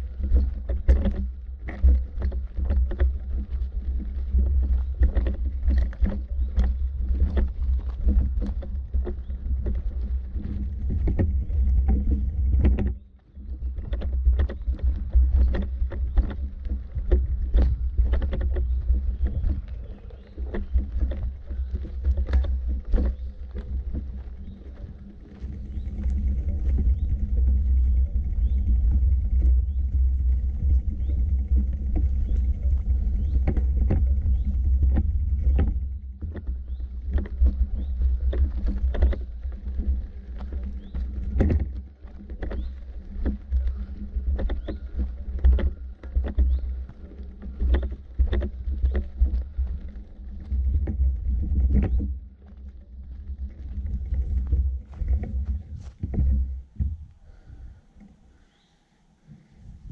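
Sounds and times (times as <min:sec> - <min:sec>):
footsteps on dirt path: 0:00.0 - 0:59.9
low microphone rumble: 0:00.0 - 0:59.9.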